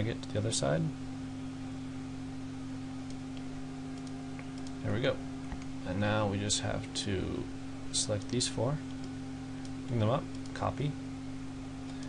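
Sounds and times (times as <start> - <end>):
low electrical hum: 0.0 - 12.0
faint clicks: 3.0 - 4.8.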